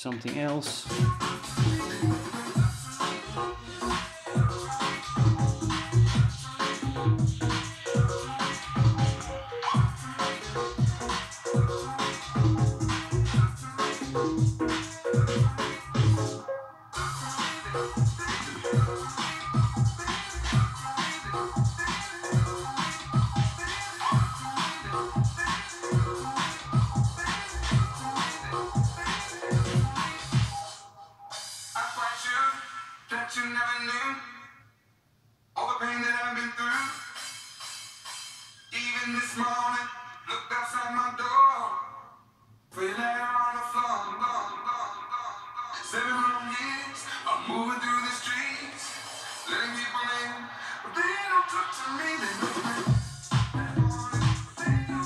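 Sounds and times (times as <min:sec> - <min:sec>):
electronic dance music: 0:00.0 - 0:33.2, 0:36.6 - 0:40.3, 0:43.8 - 0:55.0
music track with vocals: 0:00.0 - 0:34.8, 0:35.6 - 0:55.0.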